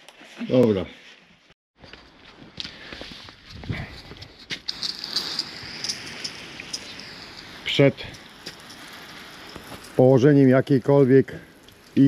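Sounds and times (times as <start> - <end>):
hose water spraying on car: 4.7 - 12.0
droplets ticking on car: 5.2 - 12.0.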